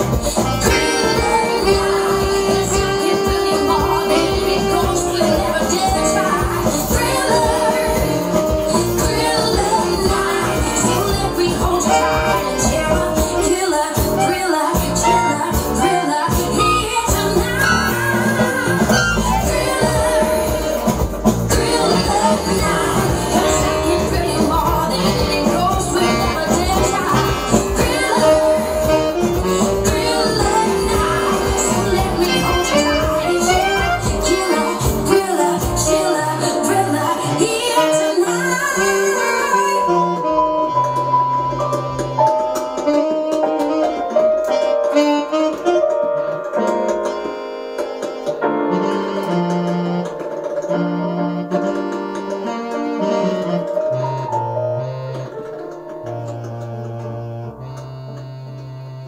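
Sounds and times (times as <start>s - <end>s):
electronic keyboard music: 0.0s - 59.0s.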